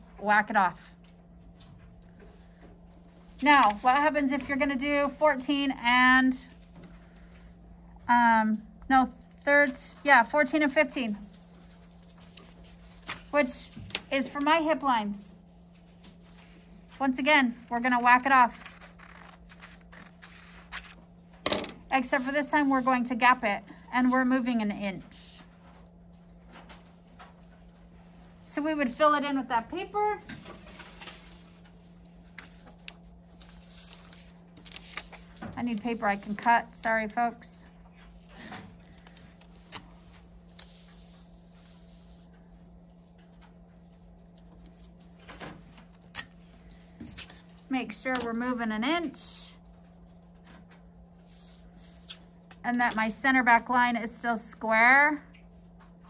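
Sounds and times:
steady low hum: 0:00.0 - 0:56.0
paper rustling: 0:02.9 - 0:05.2, 0:11.6 - 0:14.1, 0:17.6 - 0:21.0, 0:30.4 - 0:36.8
scissors cutting paper: 0:17.6 - 0:21.0
paper sliding hiss: 0:18.5 - 0:21.0, 0:40.5 - 0:42.3.

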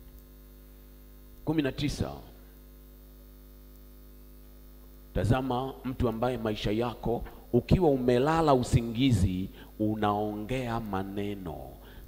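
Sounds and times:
low electrical hum: 0:00.0 - 0:12.0
man speaking: 0:01.4 - 0:02.4, 0:05.2 - 0:11.8.

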